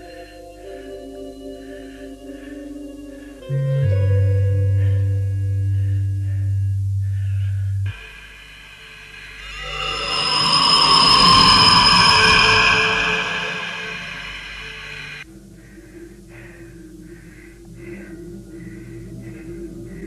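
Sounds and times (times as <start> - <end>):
low held orchestral note: 3.5 - 7.9
rocket engine roar: 9.1 - 15.2.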